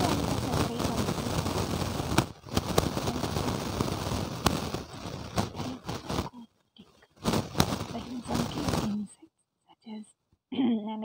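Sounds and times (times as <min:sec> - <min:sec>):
crackling rushing noise: 0:00.0 - 0:06.4, 0:07.1 - 0:09.0.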